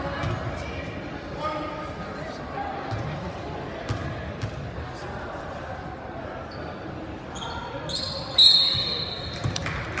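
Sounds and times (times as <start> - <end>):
crowd chatter: 0.0 - 10.0
referee's whistle: 7.9 - 9.4.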